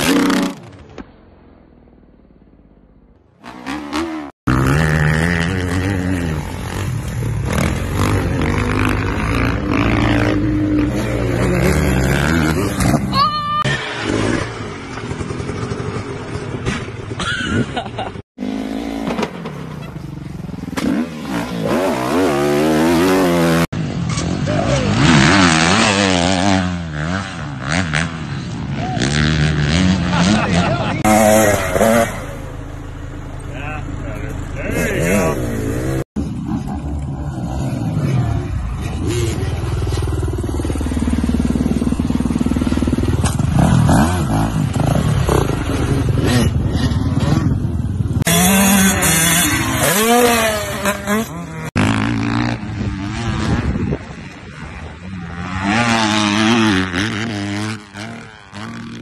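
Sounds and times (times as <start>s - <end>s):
dirt bike engines revving: 3.4s - 59.0s
people's voices: 33.4s - 35.9s.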